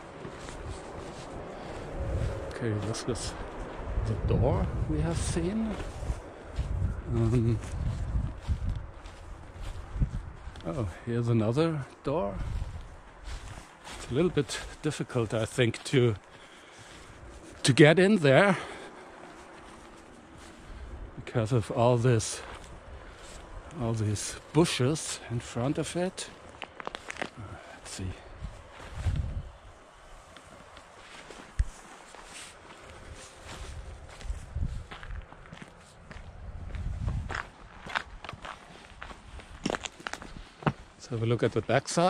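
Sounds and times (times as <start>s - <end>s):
wind rumble on microphone: 0.0s - 11.0s, 12.2s - 14.8s, 19.4s - 24.5s, 28.0s - 30.3s, 32.9s - 40.6s
footsteps through dry grass: 0.0s - 42.0s
twigs snapping underfoot: 26.4s - 27.4s, 39.5s - 40.3s.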